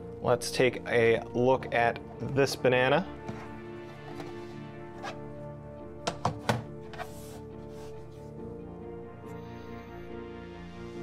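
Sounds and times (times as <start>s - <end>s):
background music: 0.0s - 11.0s
hollow thunks in plastic box: 6.0s - 6.8s.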